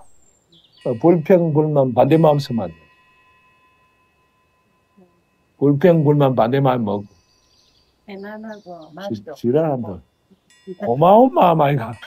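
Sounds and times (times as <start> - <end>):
faint high tone: 10.6 - 11.7.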